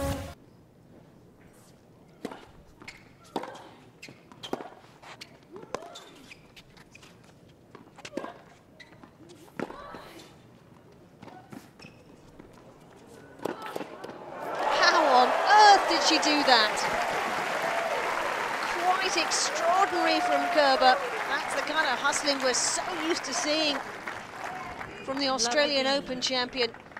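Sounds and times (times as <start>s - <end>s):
crowd cheering and applauding: 14.1s - 25.7s.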